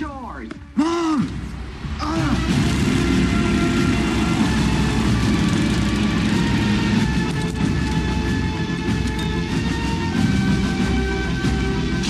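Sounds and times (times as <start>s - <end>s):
lawn mower engine running: 2.6s - 9.6s.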